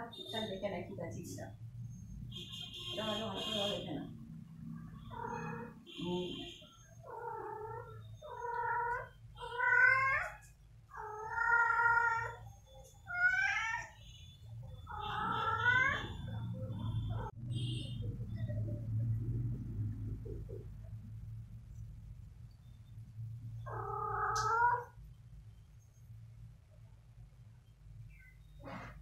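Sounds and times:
cat meowing: 5.1s - 5.8s, 7.0s - 12.4s, 13.1s - 14.0s, 14.9s - 16.2s, 23.7s - 25.0s.

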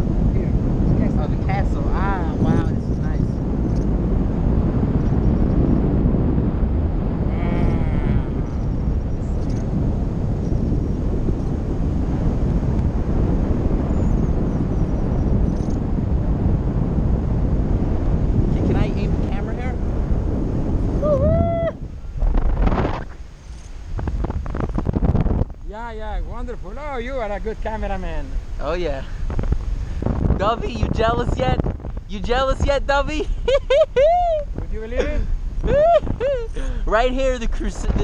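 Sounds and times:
wind buffeting microphone: 0.0s - 38.0s
person calling out: 7.3s - 8.5s.

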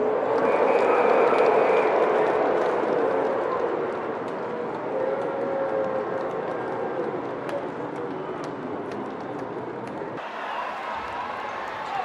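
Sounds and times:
crowd cheering and shouting: 10.2s - 12.0s.

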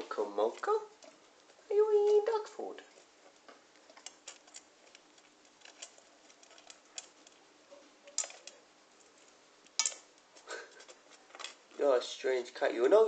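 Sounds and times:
kitten crunching dry food: 2.8s - 11.8s.

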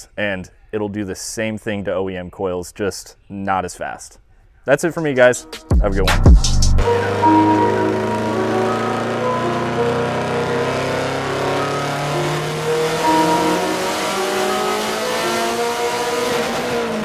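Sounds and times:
car engine revving under load: 6.8s - 17.0s.

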